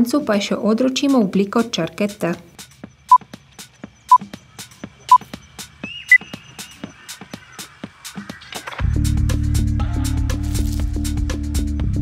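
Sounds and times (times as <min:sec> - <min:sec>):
background music with heavy bass: 0:02.6 - 0:12.0
timer countdown beeps: 0:04.1 - 0:05.4.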